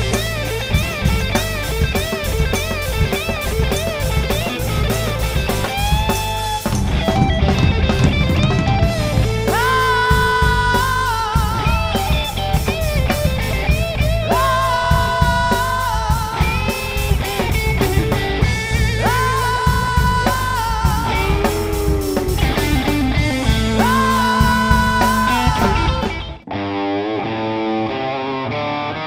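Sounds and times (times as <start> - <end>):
drum kit: 0.0 - 26.5
electric guitar: 0.0 - 29.0
man singing high notes: 23.4 - 26.2.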